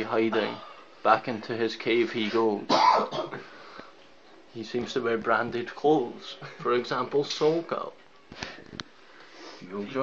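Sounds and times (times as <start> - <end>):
man speaking: 0.0 - 2.9, 4.5 - 8.0, 9.6 - 10.0.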